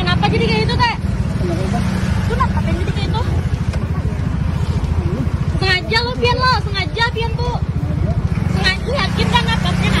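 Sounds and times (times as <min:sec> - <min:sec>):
woman's voice: 0:00.0 - 0:01.0, 0:08.5 - 0:10.0
scooter engine idling: 0:00.0 - 0:10.0.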